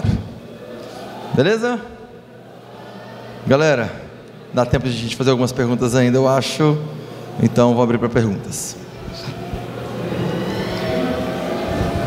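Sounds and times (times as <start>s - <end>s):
event hall din: 0.0s - 12.0s.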